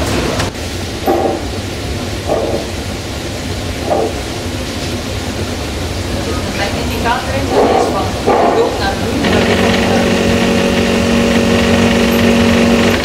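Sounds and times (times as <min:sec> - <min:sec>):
distillation unit rumbling: 0:00.0 - 0:13.0.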